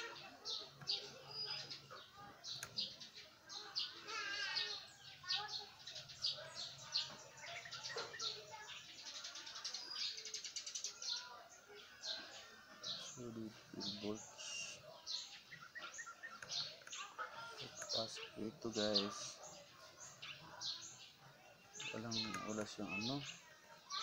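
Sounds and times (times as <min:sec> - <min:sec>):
small birds chirping: 0:00.0 - 0:24.0.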